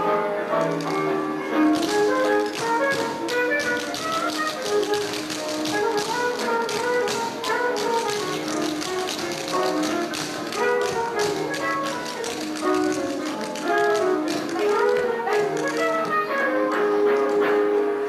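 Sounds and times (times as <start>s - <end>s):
recorded music with melody: 0.0s - 18.0s
tap shoes clicking on floor: 0.5s - 17.8s.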